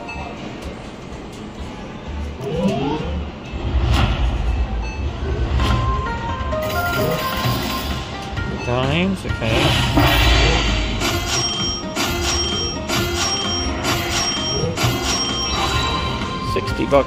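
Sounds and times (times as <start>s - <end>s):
slot machine music: 2.3s - 3.9s, 4.6s - 17.0s
low rumble: 3.1s - 6.6s, 9.5s - 11.3s.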